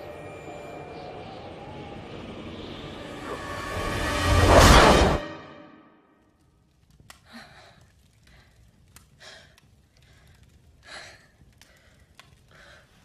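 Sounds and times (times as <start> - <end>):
loud film score: 0.0 - 6.3
woman breathing heavily: 7.2 - 13.0.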